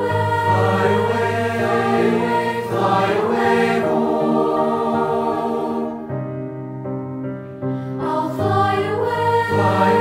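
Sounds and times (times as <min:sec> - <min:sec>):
choir singing in harmony: 0:00.0 - 0:06.5, 0:07.7 - 0:10.0.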